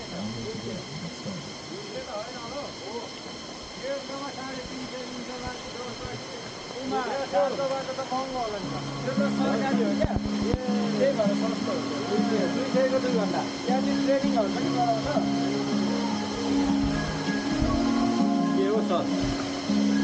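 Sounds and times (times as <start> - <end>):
people talking outdoors: 0.0 - 20.0
steady hiss: 0.0 - 20.0
music of sustained low notes: 8.5 - 20.0.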